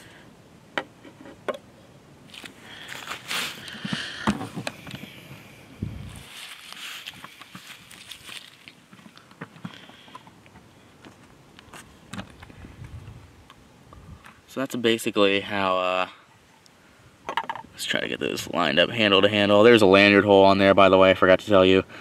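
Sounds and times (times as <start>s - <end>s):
soft rustling: 2.3s - 4.1s, 5.9s - 10.1s.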